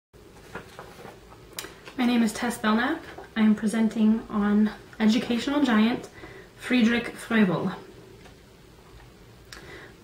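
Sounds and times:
person speaking: 1.9 - 7.9
intake of breath: 6.2 - 6.6, 9.6 - 10.0.

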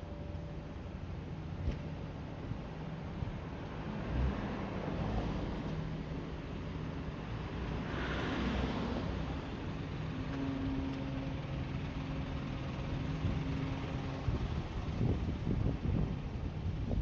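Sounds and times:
vehicle engine humming: 0.0 - 17.0
wind buffeting microphone: 13.1 - 17.0.

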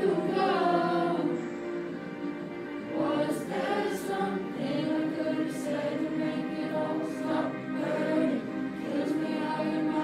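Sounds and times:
boys' choir singing: 0.0 - 10.0.

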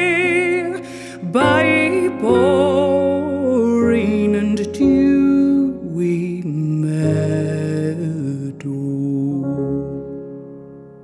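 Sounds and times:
slow piano music: 0.0 - 11.0.

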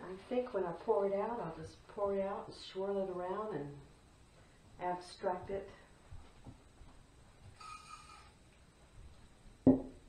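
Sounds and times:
faint high squeak: 7.6 - 8.4
hard object knocking on table: 9.6 - 10.0.

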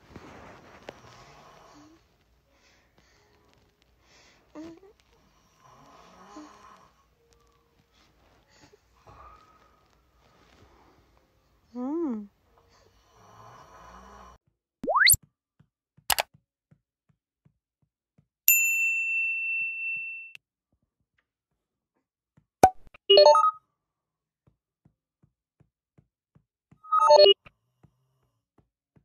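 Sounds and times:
bell-like ding: 18.5 - 20.4.

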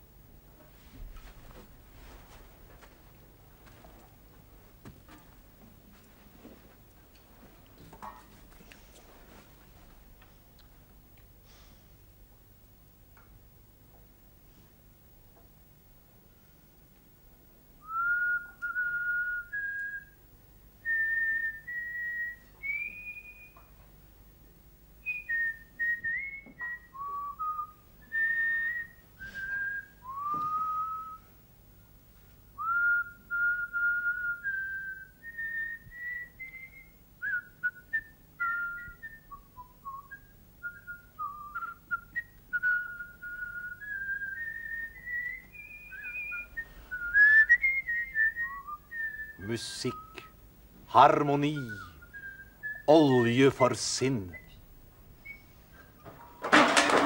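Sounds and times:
man whistling a slow tune: 17.8 - 20.2, 20.8 - 23.8, 25.0 - 31.4, 32.6 - 50.4, 51.4 - 53.4, 54.0 - 54.6, 55.2 - 56.1.

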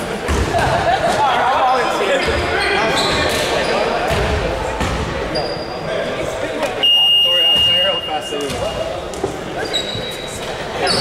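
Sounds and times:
players calling out in echoing gym: 0.0 - 11.0.

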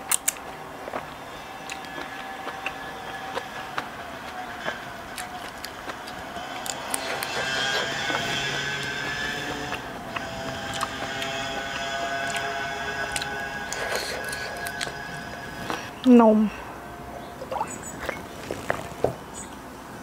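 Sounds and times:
eating clicks: 0.0 - 15.0.

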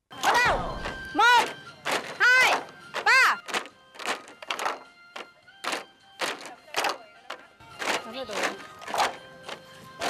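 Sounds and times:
music: 0.1 - 10.0
bamboo poles clacking: 0.2 - 10.0.

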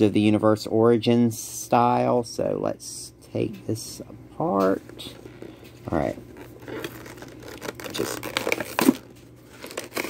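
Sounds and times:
plastic packaging crinkling and tearing: 5.2 - 10.0.

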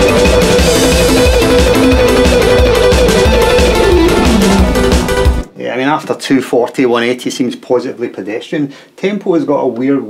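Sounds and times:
electric guitar picking repeated note: 0.3 - 5.5
steady low beat: 0.4 - 5.5.

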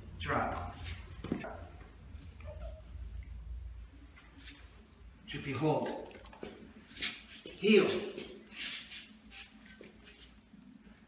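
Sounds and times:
dog paws shuffling on tiles: 5.6 - 10.8.

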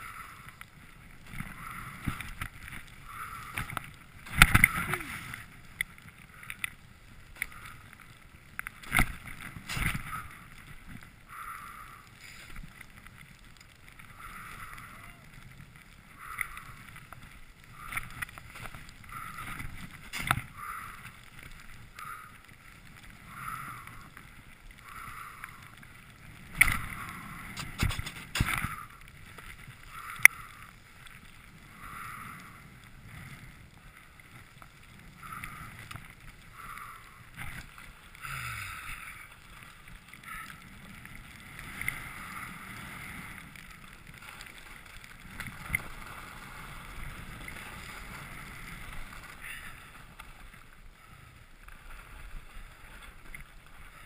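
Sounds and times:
skis swishing through snow: 26.2 - 30.0, 39.4 - 54.0
skis knocking: 27.6 - 28.8.

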